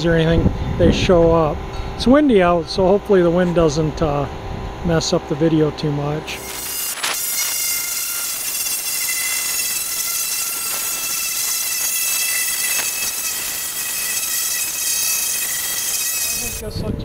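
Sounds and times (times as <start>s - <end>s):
pneumatic air sander whining: 6.3s - 16.7s.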